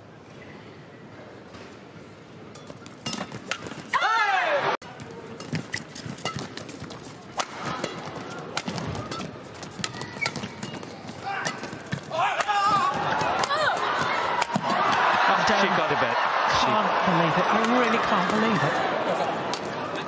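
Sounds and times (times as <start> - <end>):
shoes squeaking on court: 4.9 - 12.1
rackets striking shuttlecock: 5.4 - 14.7.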